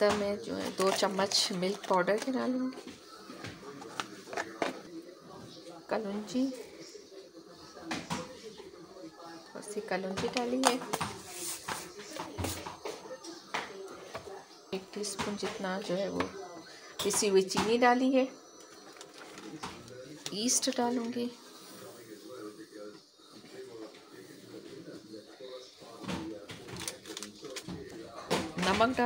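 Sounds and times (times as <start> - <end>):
quiet talking: 0.0 - 29.0.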